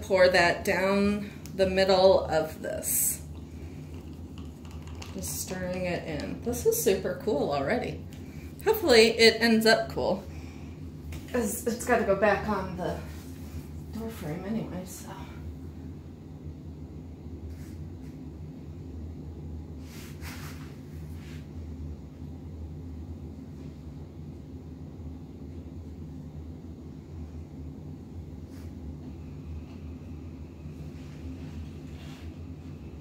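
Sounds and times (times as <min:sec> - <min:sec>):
low machine hum: 0:00.0 - 0:33.0.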